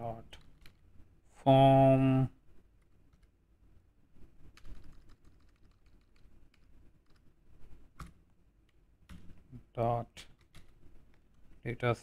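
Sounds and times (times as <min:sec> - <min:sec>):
computer keyboard typing: 0:00.4 - 0:00.8, 0:03.1 - 0:03.3, 0:04.5 - 0:07.2, 0:10.4 - 0:10.8.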